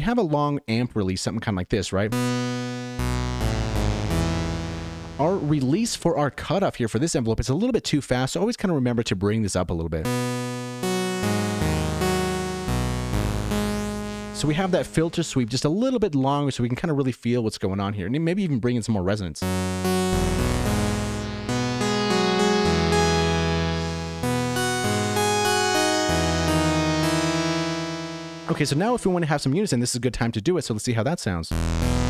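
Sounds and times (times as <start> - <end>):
synth chords with filter sweeps: 2.1 - 5.8, 10.1 - 15.5, 19.4 - 29.4, 31.5 - 32.0.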